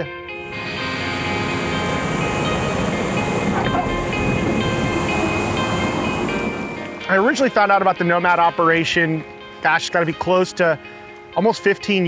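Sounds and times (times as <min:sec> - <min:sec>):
background music: 0:00.0 - 0:12.0
small plane engine rushing: 0:00.4 - 0:07.4.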